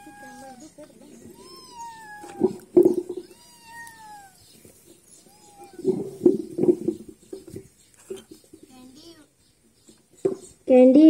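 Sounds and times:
cat meowing: 0.0s - 6.2s.

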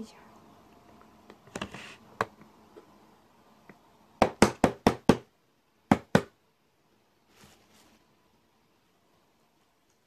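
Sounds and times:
sharp knocks on hard surface: 4.2s - 5.3s, 5.9s - 6.3s.

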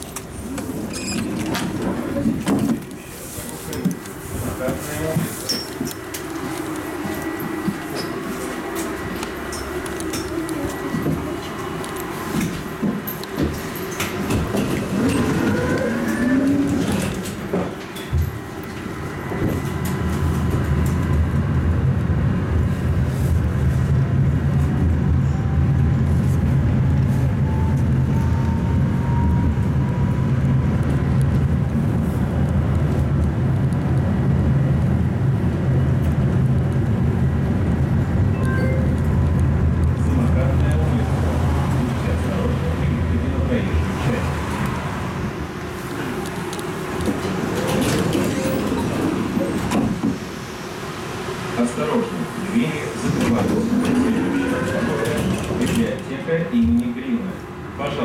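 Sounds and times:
tram wheels rumbling on rails: 0.0s - 58.0s.

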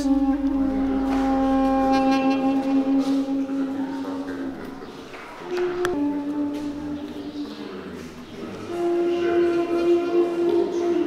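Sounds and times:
duduk playing a held note: 0.0s - 11.0s.

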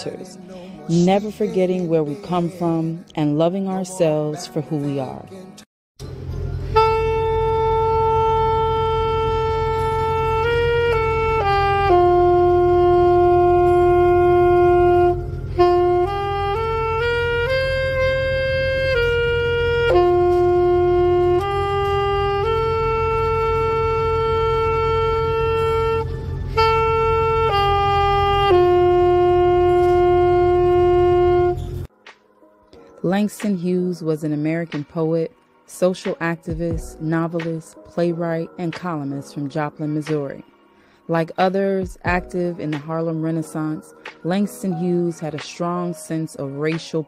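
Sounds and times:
alto saxophone long note: 6.5s - 31.9s
low rumble: 22.3s - 31.9s.

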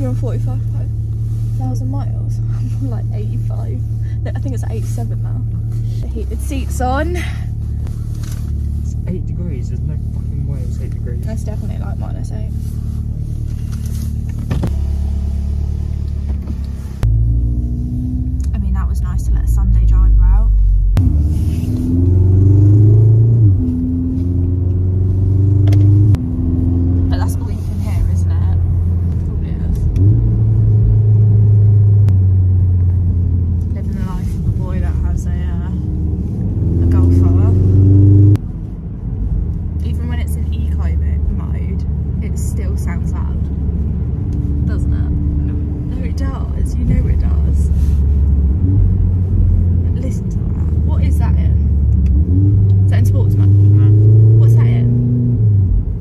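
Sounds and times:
car engine and road rumble: 0.0s - 56.0s.

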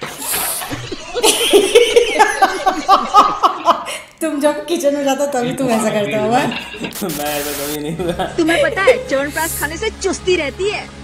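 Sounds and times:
man and woman laughing: 0.5s - 4.0s, 7.8s - 9.3s.

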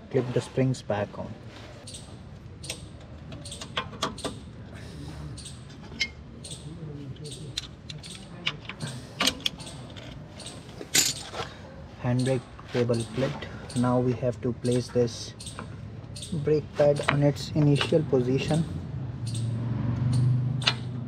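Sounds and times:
metallic clicks and clinks: 7.2s - 11.3s.

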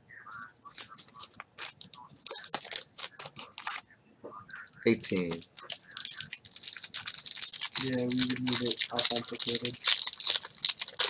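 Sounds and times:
cards being handled: 0.3s - 3.8s, 4.5s - 11.0s
plastic wrapper crinkling: 0.3s - 3.8s, 4.5s - 11.0s.

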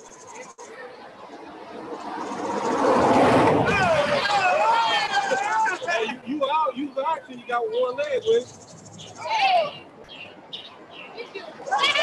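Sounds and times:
voices: 0.0s - 12.0s
vehicle passing close by: 1.1s - 5.4s.

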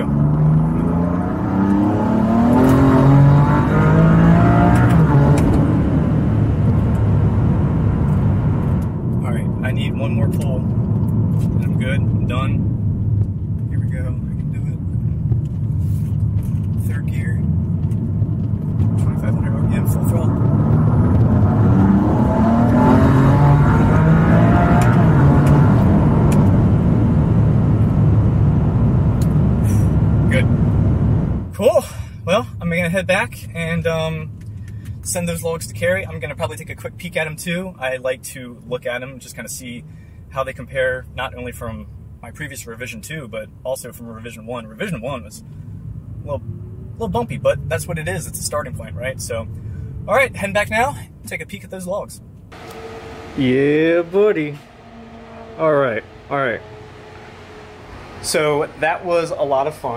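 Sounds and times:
car engine accelerating hard: 0.0s - 31.5s, 52.5s - 59.9s.

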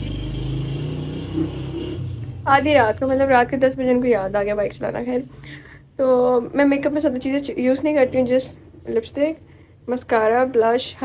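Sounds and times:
motorcycle engine running: 0.0s - 3.5s.

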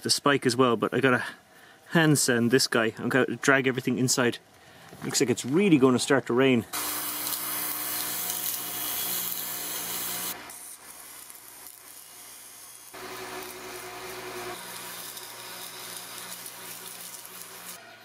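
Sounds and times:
sandpaper hissing on spinning metal: 6.8s - 18.0s
lathe motor humming: 13.0s - 17.8s.

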